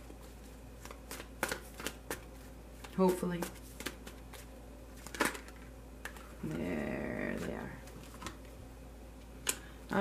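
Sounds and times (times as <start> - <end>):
cards shuffling: 0.0 - 8.5.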